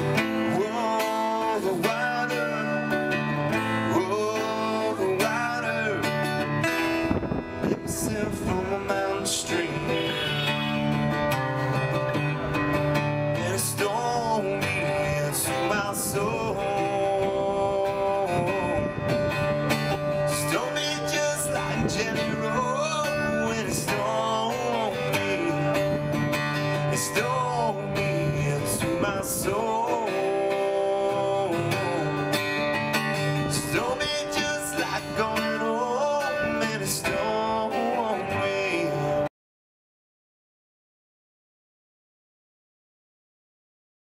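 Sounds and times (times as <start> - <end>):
acoustic guitar strumming: 0.0 - 39.3
man singing: 0.0 - 39.3.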